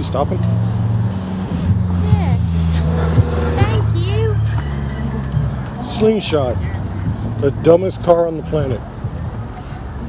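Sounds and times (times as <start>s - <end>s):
car engine running: 0.0s - 9.4s
loud music playing: 0.6s - 10.0s.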